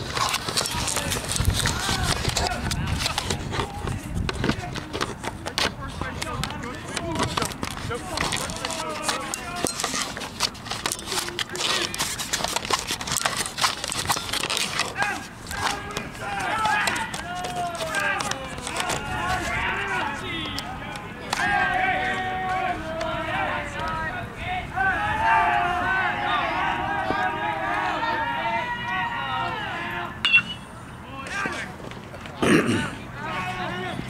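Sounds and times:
wind on microphone: 0.0s - 5.2s
voices talking and calling out: 0.6s - 34.0s
shouts and chatter: 6.6s - 10.0s, 14.8s - 31.8s, 32.6s - 34.0s.

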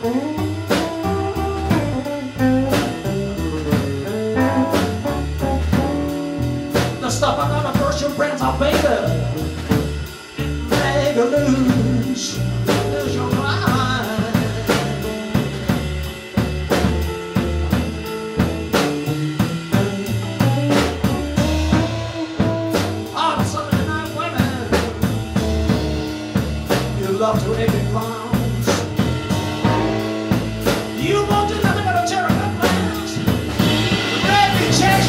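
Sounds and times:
drum kit beat: 0.0s - 35.0s
electric bass: 0.0s - 35.0s
electric guitar: 0.0s - 35.0s.

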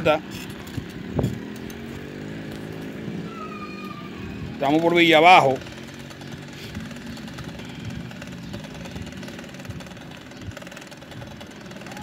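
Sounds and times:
bicycle rolling on pavement: 0.0s - 3.4s, 4.2s - 12.0s.

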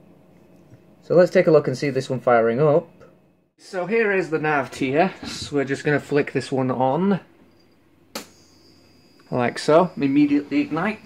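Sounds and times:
lamp high whine: 0.0s - 11.0s.

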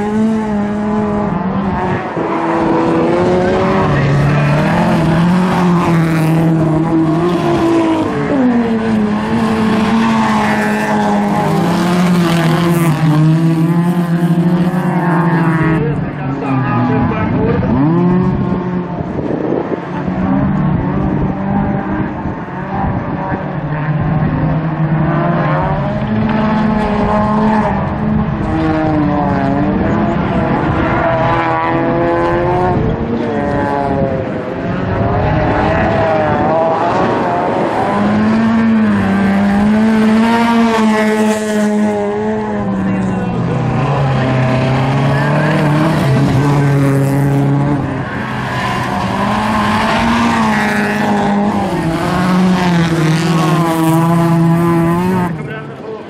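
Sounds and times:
race car engines revving: 0.0s - 56.0s.

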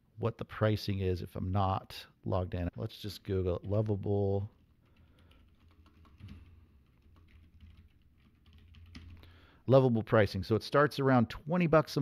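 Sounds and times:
typing on keyboard: 4.5s - 9.3s.

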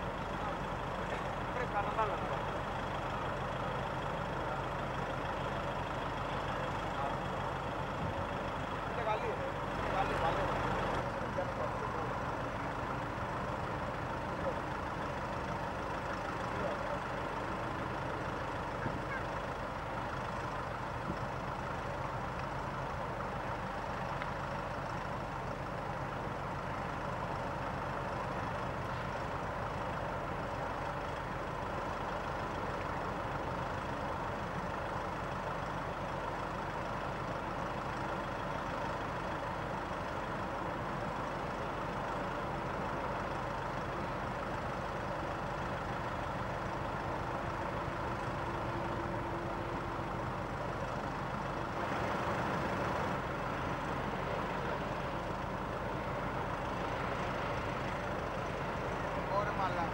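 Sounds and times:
heavy engines rumbling: 0.0s - 59.9s.

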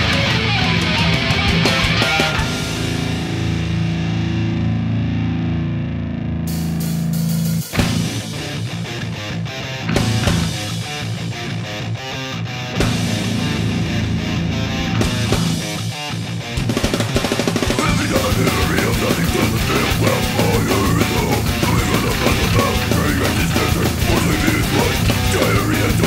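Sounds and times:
heavy metal music: 0.0s - 26.0s
drum hits: 9.9s - 10.9s, 12.8s - 26.0s.

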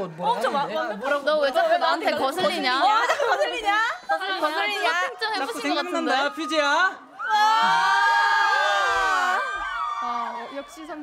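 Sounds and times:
high-pitched voices shrieking and cheering: 6.1s - 11.0s.

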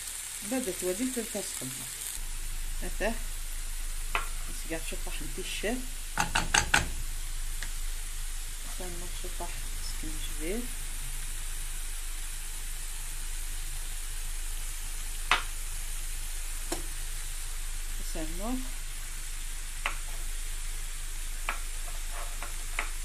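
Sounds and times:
greens sizzling in a pot: 0.0s - 23.0s
wooden spoon knocking on pot: 6.2s - 6.9s.

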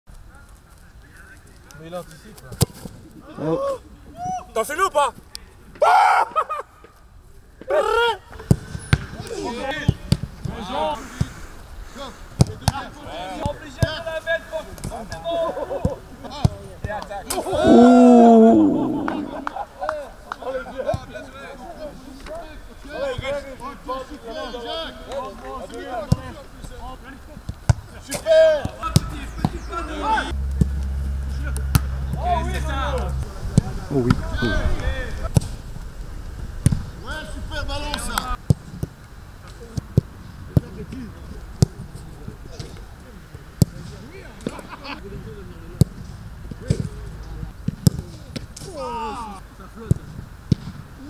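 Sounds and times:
chatter: 14.6s - 30.4s
players shouting: 17.3s - 19.6s.

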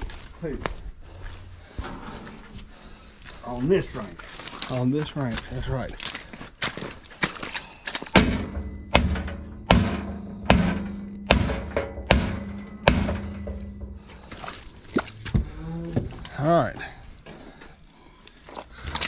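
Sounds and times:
metallic clanks ringing: 8.2s - 14.3s.

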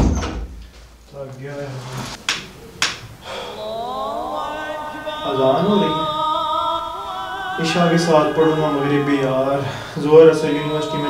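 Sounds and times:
wooden door thumping shut: 0.0s - 0.6s
man's voice: 3.2s - 11.0s.

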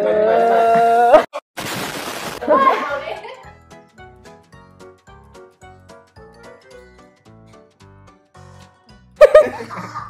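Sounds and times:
shattering crash sound effect: 1.6s - 2.4s.

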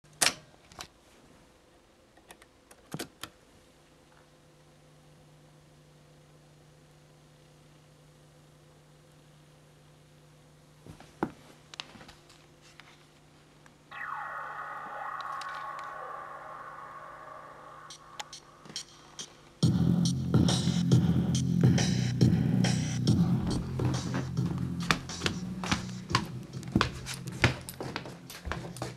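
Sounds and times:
electronic tone with falling sweep: 13.9s - 19.6s
low steady hum: 13.9s - 28.9s.

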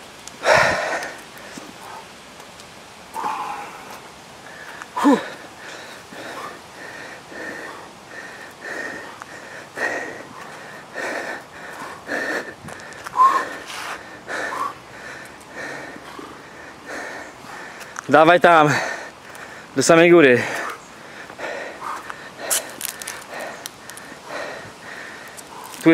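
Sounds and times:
man breathing hard: 0.4s - 2.2s, 3.1s - 25.9s
man grunting: 5.0s - 5.3s.

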